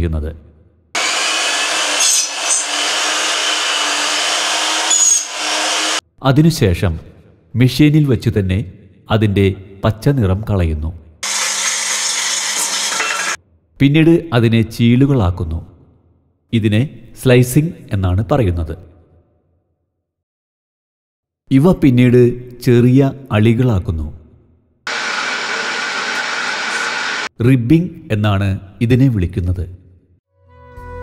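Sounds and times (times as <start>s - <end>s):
machine rasping bamboo: 1.0s - 6.0s, 11.2s - 13.4s, 24.9s - 27.3s.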